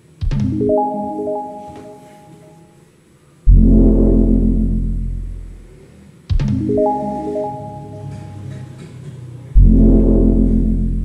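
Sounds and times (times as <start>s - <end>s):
loud low hit with deep chord: 3.5s - 5.7s, 9.6s - 11.0s
rising run of held notes: 6.8s - 8.4s.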